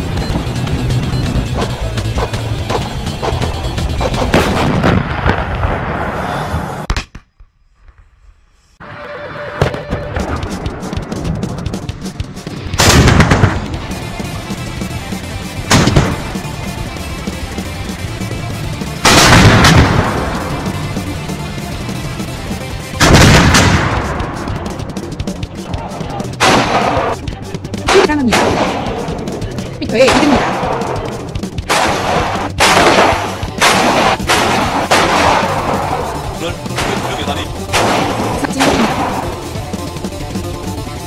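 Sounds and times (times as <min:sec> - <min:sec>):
howitzer firing blast: 0:02.6 - 0:06.8, 0:12.6 - 0:14.4, 0:15.6 - 0:16.4, 0:19.0 - 0:20.8, 0:22.9 - 0:24.8, 0:26.3 - 0:27.2, 0:27.9 - 0:29.2, 0:31.6 - 0:39.5.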